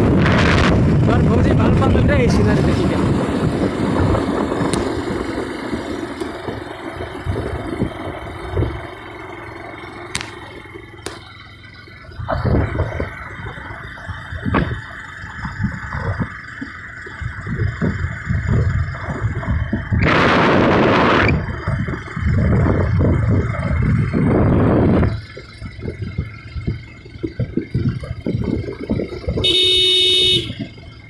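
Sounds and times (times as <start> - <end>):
wind buffeting microphone: 0.0 - 9.1, 12.1 - 29.7
vehicle horn: 29.4 - 30.8.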